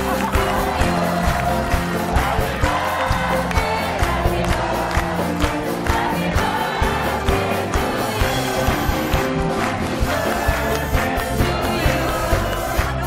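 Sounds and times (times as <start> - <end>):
group of voices singing: 0.0 - 13.0
live band playing upbeat song: 0.0 - 13.0
steady drum beat: 0.0 - 13.0.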